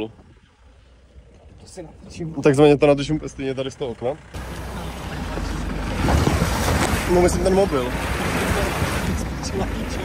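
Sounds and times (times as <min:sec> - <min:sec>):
low engine rumble: 0:00.0 - 0:10.0
tyres splashing through puddles: 0:04.3 - 0:10.0.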